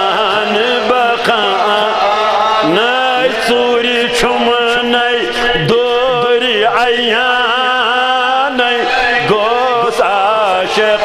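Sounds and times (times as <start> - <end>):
man chanting over loudspeakers: 0.0 - 11.0.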